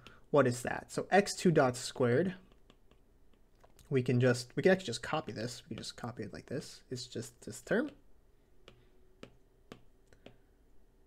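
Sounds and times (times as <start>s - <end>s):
stylus taps on tablet screen: 8.6s - 10.4s.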